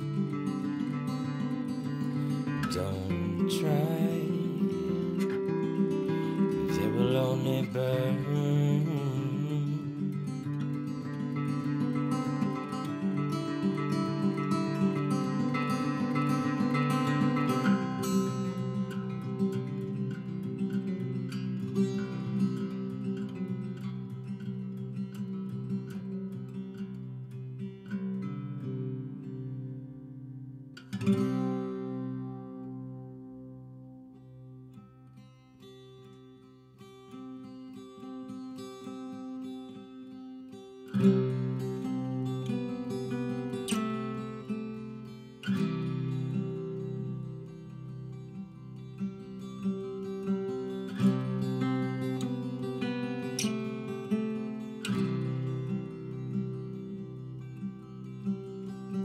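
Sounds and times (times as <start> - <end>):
strummed guitar chord ringing: 0.0 - 22.6
acoustic guitar fingerstyle: 0.0 - 59.0.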